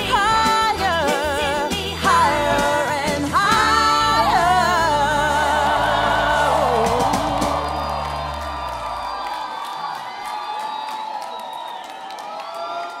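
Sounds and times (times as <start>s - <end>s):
live band playing: 0.0s - 8.6s
crowd cheering and whooping: 3.4s - 13.0s.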